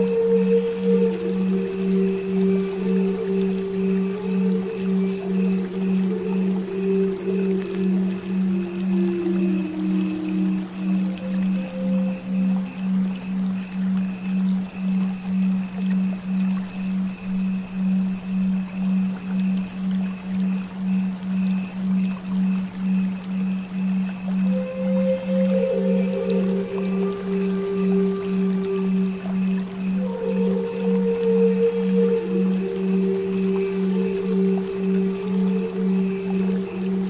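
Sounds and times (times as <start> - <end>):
flowing water hiss: 0.0 - 37.0
flute playing slow notes: 0.0 - 37.0
low pulsing tone: 0.0 - 37.0.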